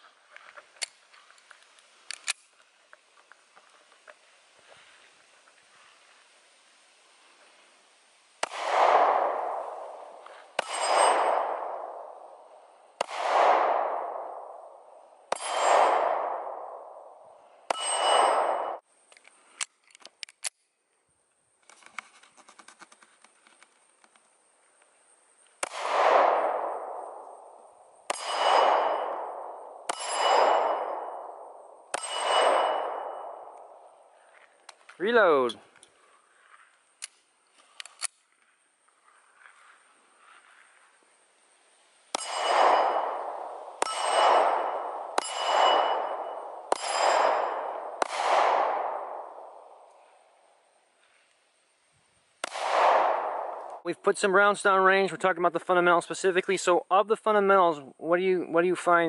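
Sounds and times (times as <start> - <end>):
pistol loading clicks: 2.0 - 2.5, 19.1 - 20.7, 37.0 - 38.2
pistol shots: 8.4 - 18.8, 25.6 - 34.0, 42.1 - 49.9, 52.4 - 53.8
steel plate target ringing: 9.2 - 12.5, 15.3 - 17.1, 17.7 - 18.8, 26.3 - 34.0, 42.2 - 49.8.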